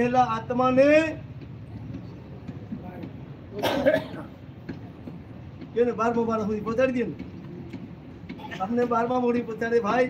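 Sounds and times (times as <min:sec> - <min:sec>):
man coughing into cloth: 0:03.5 - 0:04.4.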